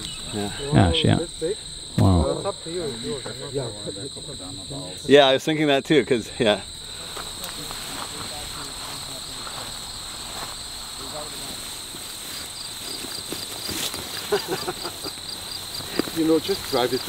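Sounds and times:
crickets trilling: 0.0 - 17.0
insect pulsing chirp: 0.0 - 17.0.

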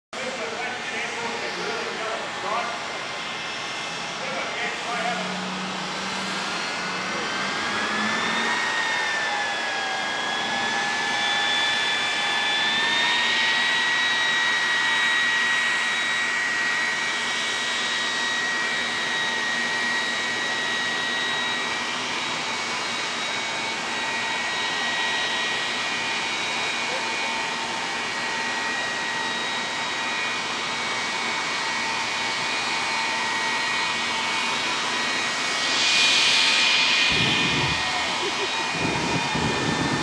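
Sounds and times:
jet engine hiss and whine: 0.2 - 40.0.

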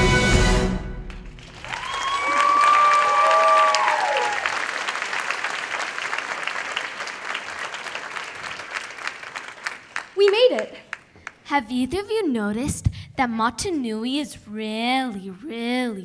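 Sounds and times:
audience applauding: 1.0 - 11.4
cheering whoops: 1.5 - 6.5.

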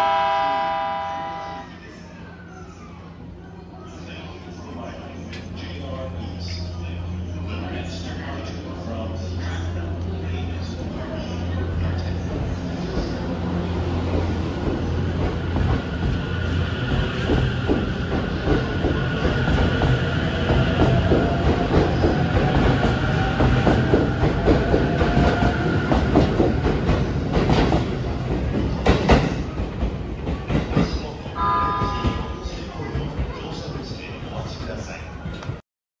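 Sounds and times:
train wheels clacking: 14.1 - 31.1.

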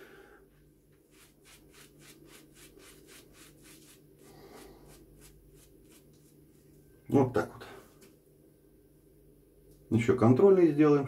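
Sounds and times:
shaving brush bristle strokes: 1.0 - 6.7.

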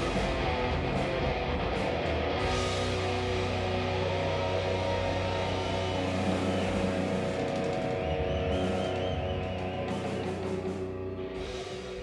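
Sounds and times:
bass guitar: 0.0 - 12.0
distorted electric guitar: 0.0 - 12.0.

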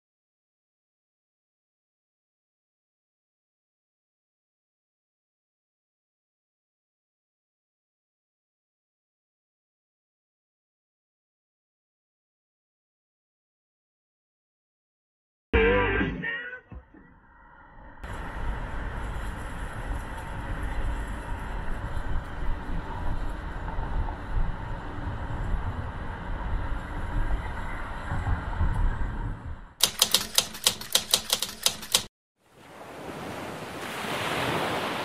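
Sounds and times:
city traffic rumble: 18.0 - 32.0
fast run of sharp clicks: 29.8 - 32.1.

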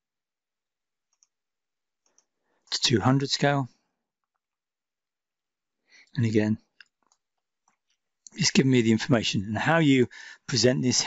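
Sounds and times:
faint computer mouse click: 1.1 - 1.4.

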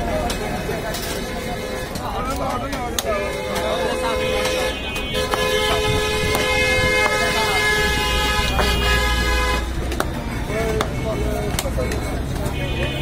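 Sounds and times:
low engine rumble: 0.0 - 13.0
vehicle horn long blast: 3.1 - 9.8, 12.5 - 13.0.

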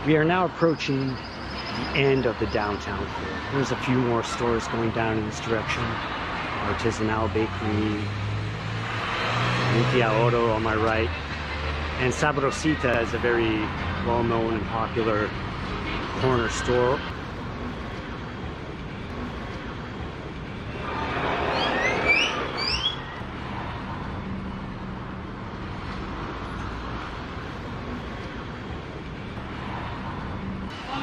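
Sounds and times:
car traffic noise: 0.0 - 31.0
vehicle passing close: 6.4 - 13.4
short rising chirps: 21.4 - 23.2.

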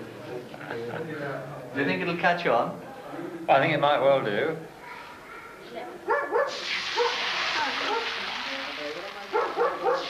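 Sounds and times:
food sizzling in hot oil: 6.5 - 10.0.

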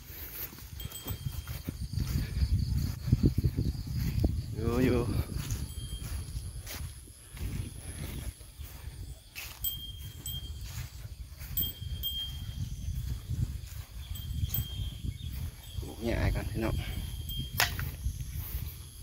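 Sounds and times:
rustling in grass: 0.0 - 19.0.

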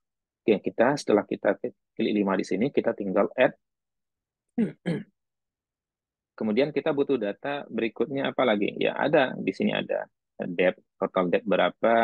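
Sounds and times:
man clearing throat: 4.6 - 5.2.

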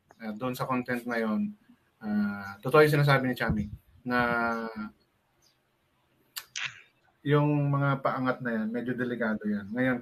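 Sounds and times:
man speaking: 0.2 - 5.0, 7.2 - 10.0
mouth click: 6.4 - 6.9.

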